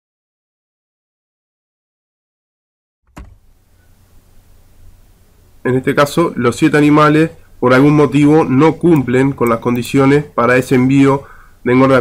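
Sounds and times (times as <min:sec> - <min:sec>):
faint microphone hiss: 0:03.1 - 0:12.0
low electrical hum: 0:03.1 - 0:12.0.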